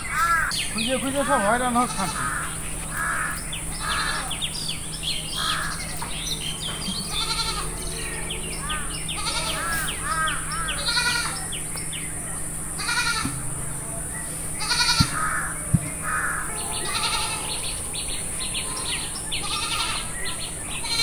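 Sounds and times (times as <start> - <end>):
birds chirping and calling: 0.0 - 21.0.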